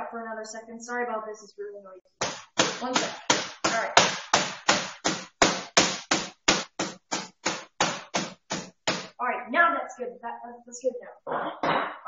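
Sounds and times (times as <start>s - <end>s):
meat mallet pounding: 2.2s - 9.2s.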